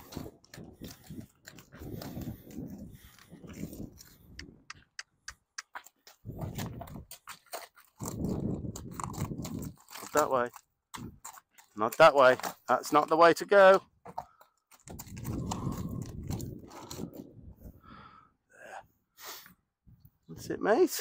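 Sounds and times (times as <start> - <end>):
horse hooves on gravel: 0.0 - 17.4.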